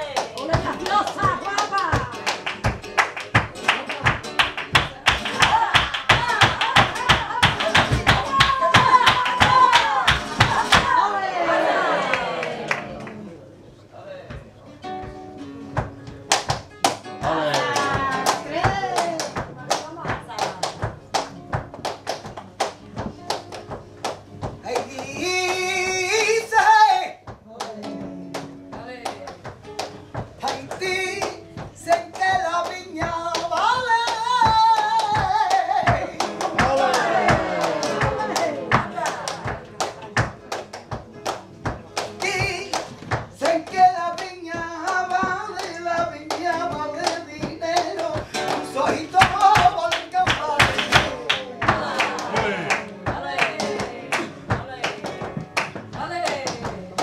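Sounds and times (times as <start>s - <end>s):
rhythmic handclaps: 0.0s - 11.0s, 15.1s - 57.0s
woman singing flamenco: 0.0s - 11.3s, 14.9s - 57.0s.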